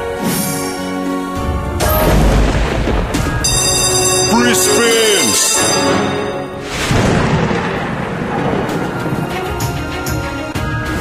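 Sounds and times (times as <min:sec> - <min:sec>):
thunder-like boom: 0:01.8 - 0:03.5, 0:06.6 - 0:09.2.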